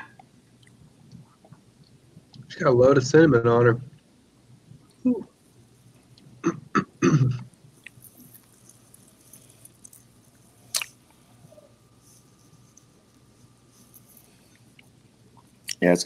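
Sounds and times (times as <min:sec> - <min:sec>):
man clearing his throat: 0:06.4 - 0:07.5.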